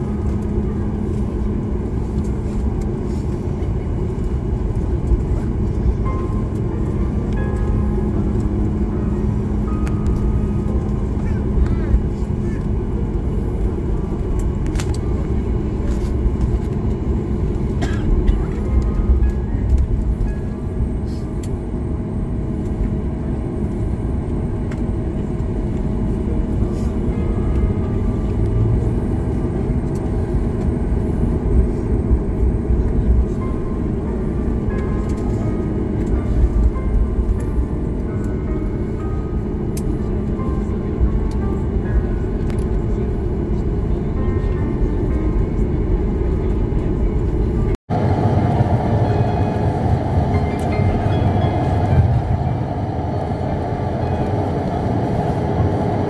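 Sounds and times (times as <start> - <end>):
jet engines idling: 0.0 - 56.0
steady cabin hum: 0.0 - 56.0
high-pitched tone: 48.3 - 56.0.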